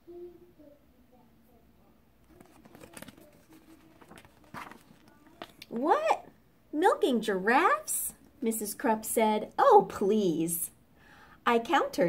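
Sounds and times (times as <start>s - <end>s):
book page turning: 2.2s - 5.8s.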